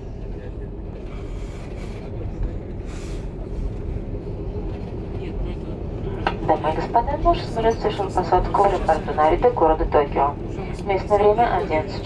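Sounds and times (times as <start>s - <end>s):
airliner cabin low rumble: 0.0s - 12.0s.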